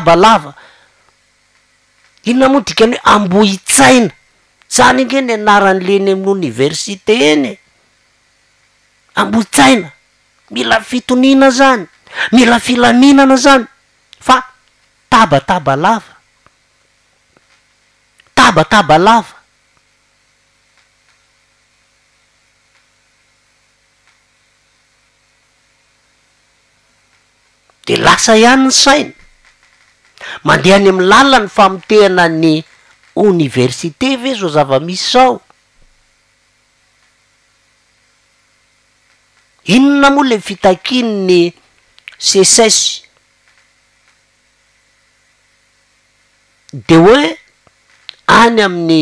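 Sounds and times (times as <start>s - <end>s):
low hum and hiss: 0.0s - 49.0s
faint small clicks: 1.1s - 2.2s, 20.7s - 21.3s, 22.7s - 22.9s, 24.0s - 24.2s, 41.8s - 42.2s, 43.0s - 44.2s, 47.5s - 48.3s.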